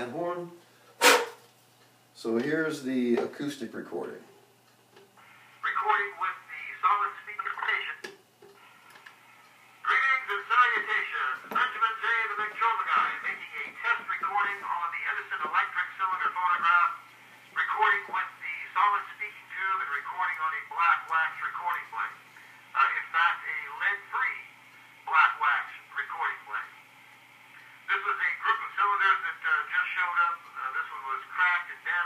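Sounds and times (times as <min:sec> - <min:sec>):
man's voice on phonograph: 0:00.0 - 0:00.6, 0:02.2 - 0:04.3, 0:05.6 - 0:08.2, 0:09.8 - 0:26.8, 0:27.5 - 0:32.0.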